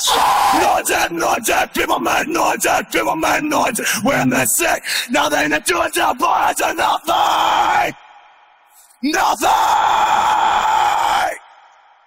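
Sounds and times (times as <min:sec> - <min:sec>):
man screaming a vocal yell: 0:00.0 - 0:04.6, 0:09.0 - 0:11.4.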